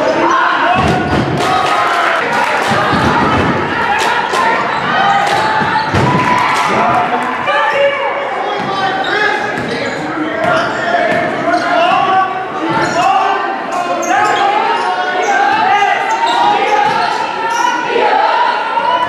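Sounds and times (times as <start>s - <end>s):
voices calling out: 0.0s - 19.0s.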